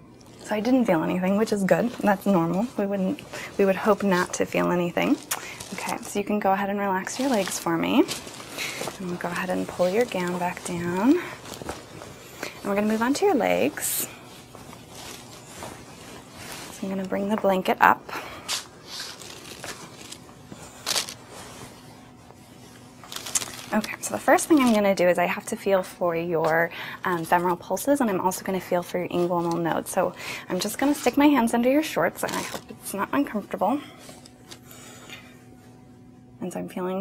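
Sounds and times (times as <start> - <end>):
faint steady hum: 0.0 - 37.0
blanket rustling: 0.2 - 33.3
soft touches: 0.3 - 17.8, 18.4 - 25.3.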